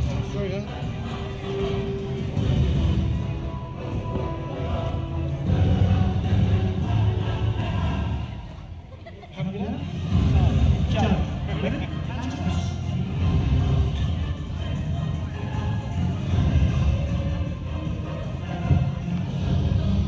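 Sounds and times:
music with heavy bass: 0:00.0 - 0:08.5, 0:09.9 - 0:20.0
voices: 0:00.0 - 0:20.0.

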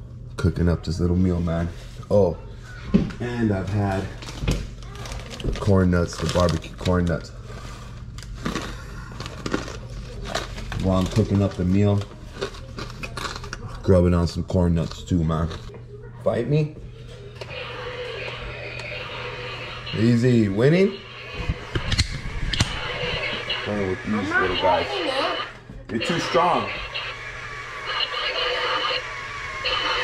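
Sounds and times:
plastic snack bag crinkling: 0:04.2 - 0:07.3, 0:08.1 - 0:13.6.

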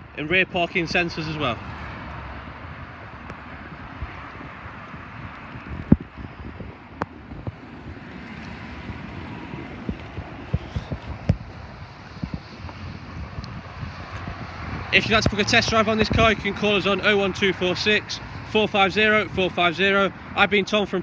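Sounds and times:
wind on microphone: 0:01.6 - 0:18.4.

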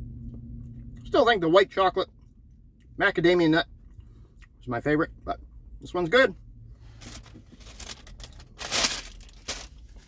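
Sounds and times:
paper wrapper rustling and crumpling: 0:07.0 - 0:10.0.

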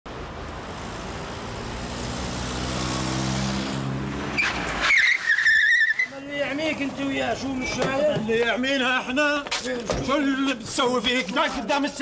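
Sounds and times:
car approaching: 0:00.1 - 0:09.2
tyres squealing: 0:04.3 - 0:12.0.

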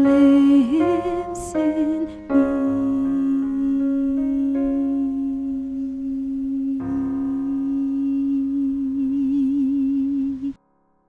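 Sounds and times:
soprano voice holding a note: 0:00.0 - 0:10.6
piano accompaniment: 0:00.0 - 0:11.0.

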